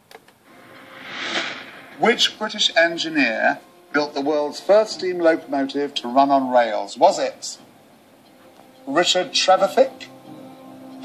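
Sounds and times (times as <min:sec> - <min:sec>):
game show rushing swell: 0:00.5 - 0:03.7.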